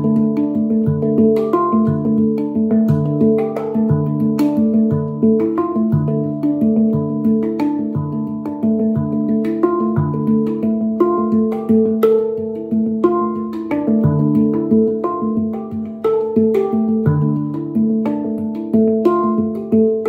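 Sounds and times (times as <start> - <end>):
handpan notes ringing: 0.0 - 20.0.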